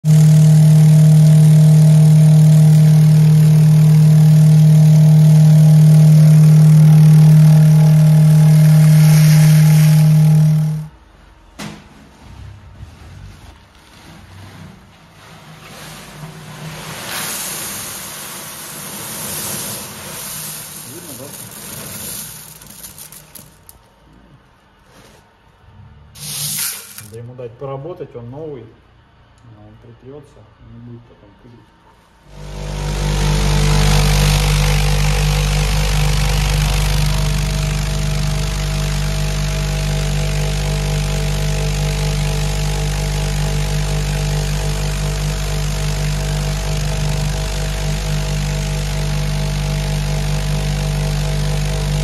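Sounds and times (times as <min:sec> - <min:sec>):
vibratory machine humming: 0:00.0 - 0:11.0, 0:32.2 - 0:52.0
plastic sack rustling: 0:12.6 - 0:23.7
chips pouring into tub: 0:16.6 - 0:23.8, 0:26.2 - 0:27.2
rattle of abrasive chips: 0:17.7 - 0:23.9.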